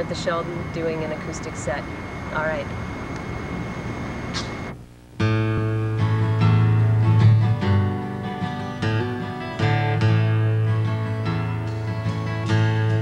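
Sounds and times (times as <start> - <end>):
outdoor background noise: 0.0 - 13.0
strummed acoustic guitar: 5.2 - 13.0.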